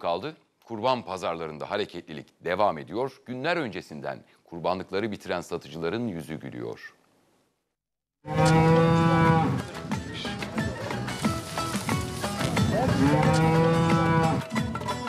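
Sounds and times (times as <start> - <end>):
cattle mooing: 8.2 - 9.6, 12.4 - 14.5.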